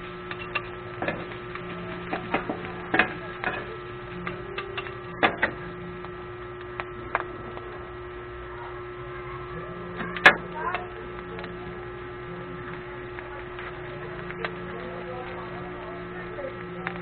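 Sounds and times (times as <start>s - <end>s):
steady hum: 0.0s - 17.0s.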